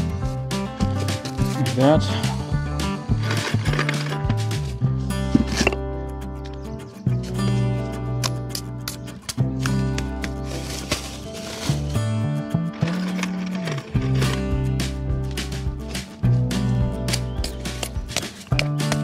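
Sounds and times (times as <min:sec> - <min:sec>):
instrumental music with bass notes: 0:00.0 - 0:19.0
sharp clicks: 0:17.0 - 0:19.0.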